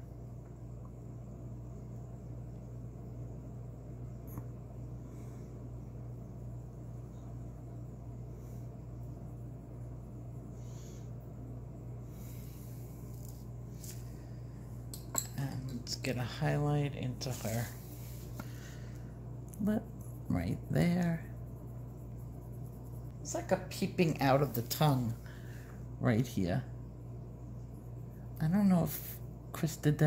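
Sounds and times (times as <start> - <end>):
steady low hum: 0.0 - 30.0.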